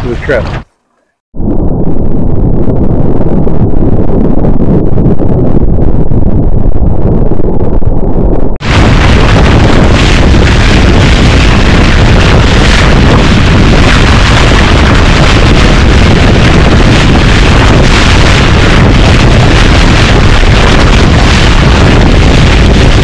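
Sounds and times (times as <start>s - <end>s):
wind buffeting microphone: 0.0s - 23.0s
water rushing along hull: 8.6s - 23.0s.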